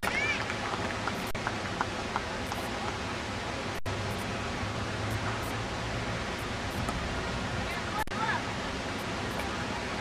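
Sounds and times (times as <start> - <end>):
outdoor hiss: 0.0 - 10.0.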